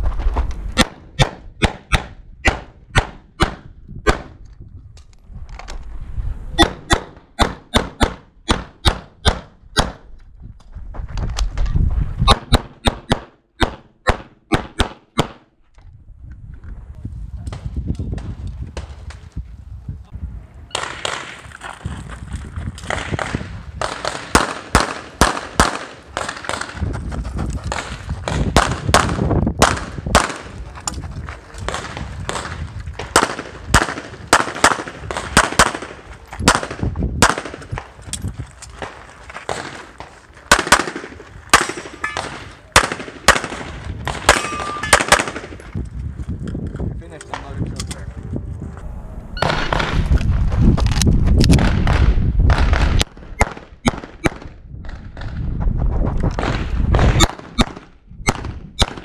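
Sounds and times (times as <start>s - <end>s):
pistol shots: 0.8s - 4.3s, 6.6s - 10.1s, 12.3s - 15.5s, 22.8s - 26.8s, 27.7s - 30.6s, 31.7s - 37.8s, 40.5s - 45.7s, 51.5s - 54.6s, 56.4s - 59.0s
low rumble: 3.7s - 7.4s, 45.6s - 53.4s.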